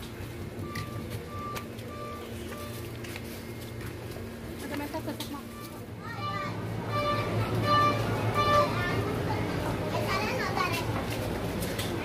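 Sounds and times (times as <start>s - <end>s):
children playing and calling out: 5.4s - 11.4s.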